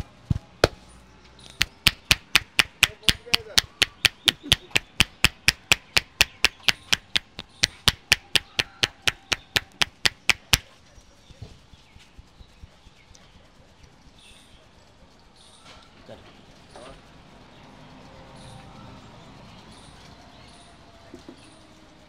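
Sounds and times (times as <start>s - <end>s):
rhythmic hand slaps on head: 1.5s - 10.7s.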